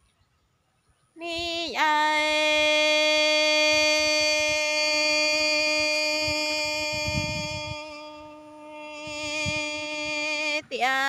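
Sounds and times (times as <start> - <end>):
woman singing a long held note: 1.2 - 11.0.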